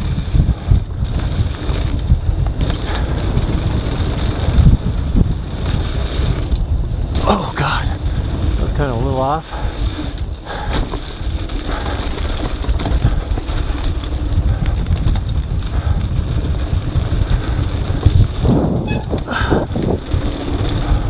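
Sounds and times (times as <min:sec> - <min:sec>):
mountain bike rumbling and rattling: 0:00.0 - 0:21.0
wind buffeting microphone: 0:00.0 - 0:21.0.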